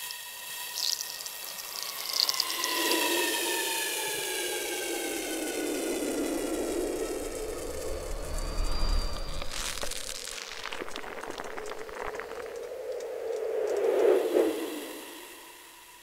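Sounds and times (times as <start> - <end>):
rushing noise: 0.0 - 16.0
low rumble: 5.0 - 14.6.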